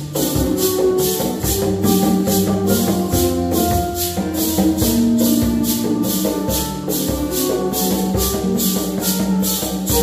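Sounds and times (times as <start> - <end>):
guitar: 0.0 - 10.0
mandolin-type instrument: 0.0 - 10.0
maracas shaken: 0.0 - 10.0.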